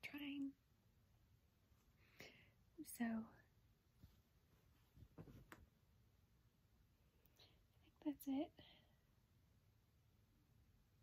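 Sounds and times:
woman speaking quietly: 0:00.0 - 0:00.6, 0:07.8 - 0:08.8
soft breath: 0:01.8 - 0:02.7.

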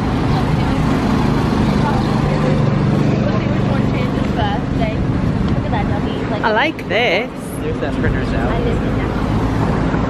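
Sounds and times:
cars driving past: 0:00.0 - 0:10.0
vehicle engine running: 0:00.0 - 0:10.0.

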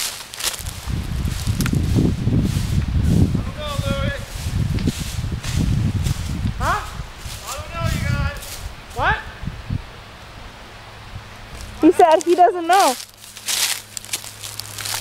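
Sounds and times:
footsteps through dry brush: 0:00.0 - 0:09.0, 0:11.5 - 0:15.0.

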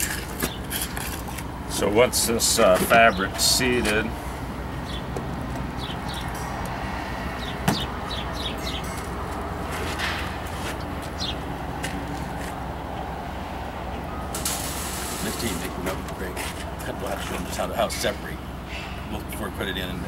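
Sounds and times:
sharp knock: 0:07.6 - 0:07.9.

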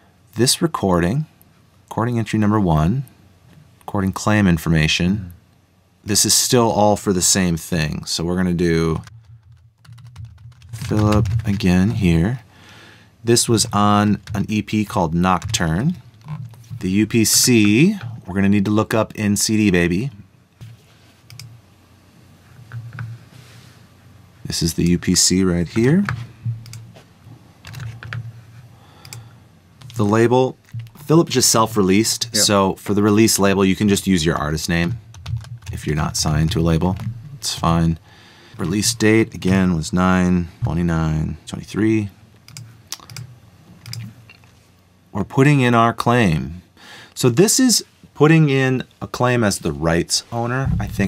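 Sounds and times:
computer mouse clicking: 0:21.3 - 0:21.5, 0:26.0 - 0:26.9, 0:27.6 - 0:28.3, 0:29.0 - 0:30.0, 0:42.4 - 0:44.1.

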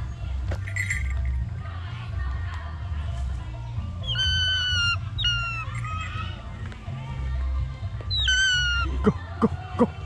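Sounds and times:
hawk-eagle shrill calls: 0:04.0 - 0:06.3, 0:08.1 - 0:09.0.

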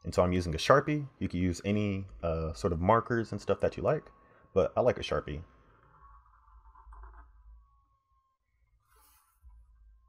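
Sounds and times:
faint steady high tone: 0:00.0 - 0:10.0
marker strokes on paper: 0:08.8 - 0:09.5.

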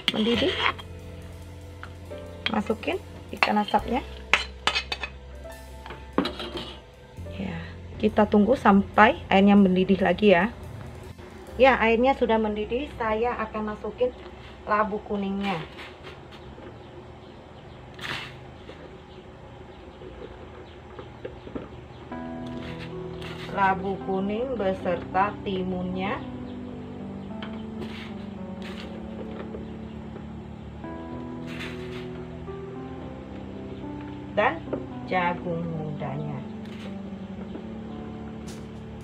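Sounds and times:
metal spoon scraping a plate and pot: 0:00.0 - 0:01.0, 0:03.4 - 0:05.2, 0:06.2 - 0:06.9, 0:22.5 - 0:23.7, 0:27.8 - 0:29.0, 0:31.4 - 0:32.2
soft background music: 0:00.0 - 0:39.0.

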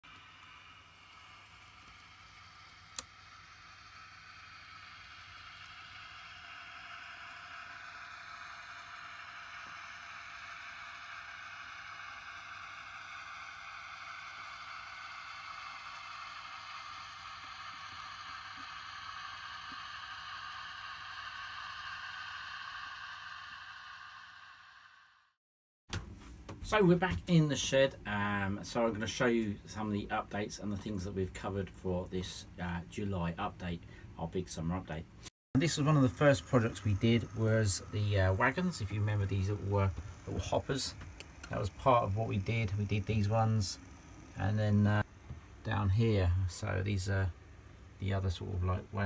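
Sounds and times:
model train running hum: 0:00.1 - 0:25.3, 0:35.6 - 0:49.0.

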